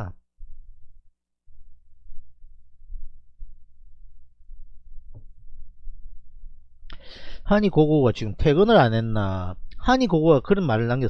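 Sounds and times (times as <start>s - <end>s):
faint steady hum: 0.0s - 11.0s
low muffled thumps: 0.4s - 6.8s
rumble: 0.4s - 6.9s.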